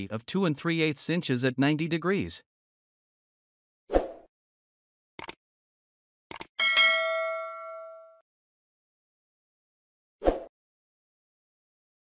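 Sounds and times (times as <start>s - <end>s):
mouse-like double clicks: 5.2s - 5.4s, 6.3s - 6.5s
bright bell ding: 6.6s - 8.2s.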